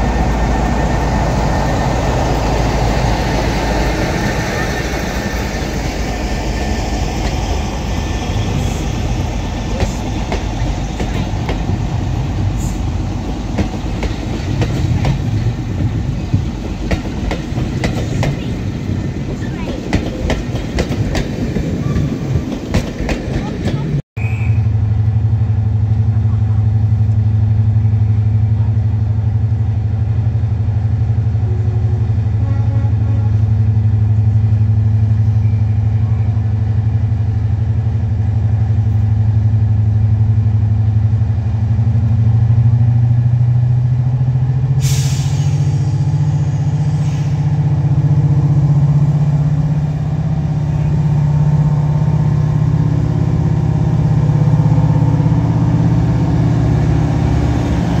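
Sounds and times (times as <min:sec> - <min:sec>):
diesel locomotive engine: 0:00.0 - 0:58.0
air hiss: 0:44.8 - 0:46.1.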